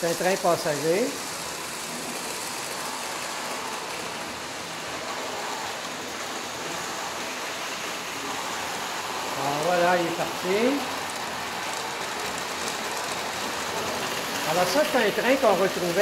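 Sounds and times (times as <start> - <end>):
model train whirring on track: 0.0 - 16.0.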